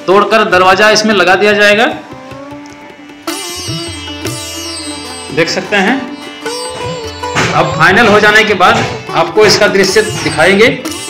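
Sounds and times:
plucked string instrument music: 1.4s - 11.0s.

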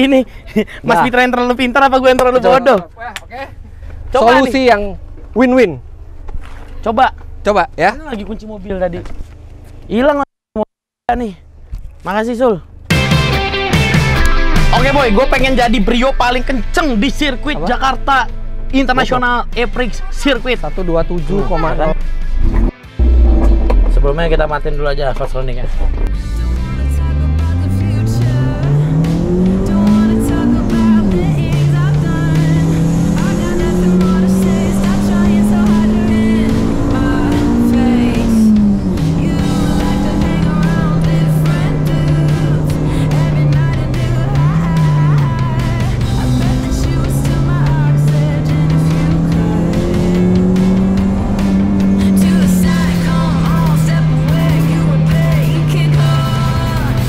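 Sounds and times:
car engine accelerating hard: 22.4s - 57.0s.

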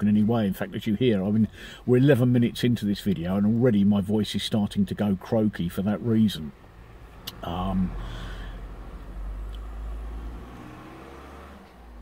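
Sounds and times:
car engine rumble with whine: 0.0s - 12.0s.

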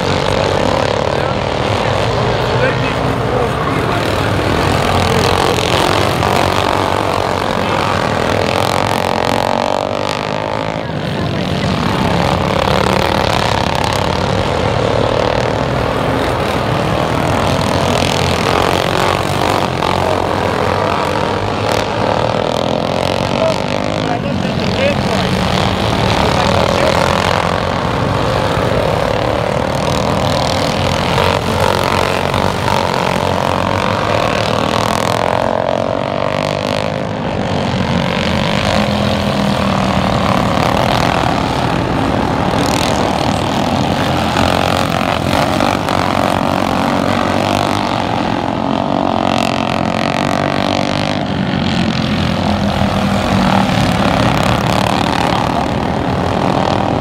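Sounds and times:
lawn mower engines buzzing: 0.0s - 57.0s.

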